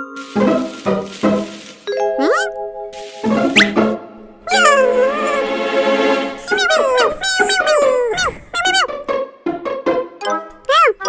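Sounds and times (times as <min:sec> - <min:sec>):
cartoon character babbling: 0:02.2 - 0:02.5, 0:04.5 - 0:05.5, 0:06.4 - 0:08.9, 0:10.7 - 0:11.0.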